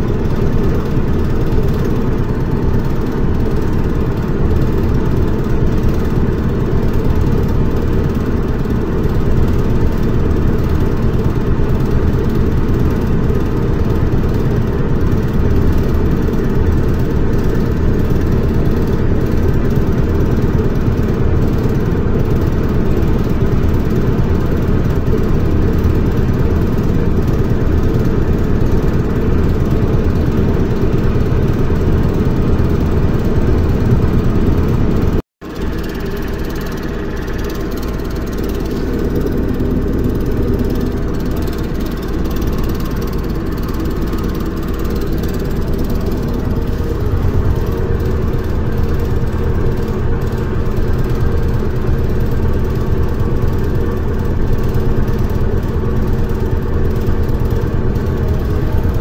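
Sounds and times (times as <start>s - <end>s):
train wheels rumbling on track: 0.0s - 59.0s.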